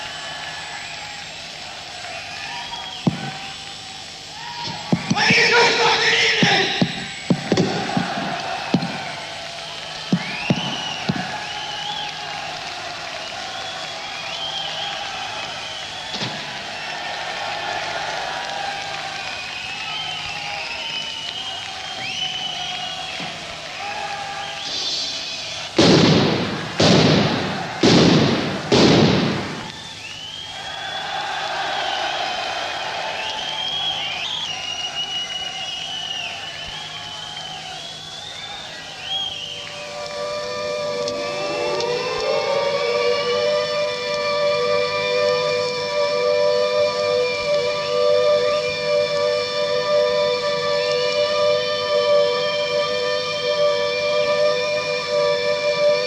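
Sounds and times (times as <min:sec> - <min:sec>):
low hum: 0:00.0 - 0:23.8, 0:24.4 - 0:56.0
high gliding squeals: 0:19.1 - 0:25.8, 0:29.6 - 0:52.0.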